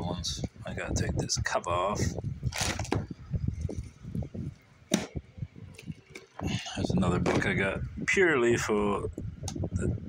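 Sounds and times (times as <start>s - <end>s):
book handling rustles and bumps: 2.5s - 4.0s.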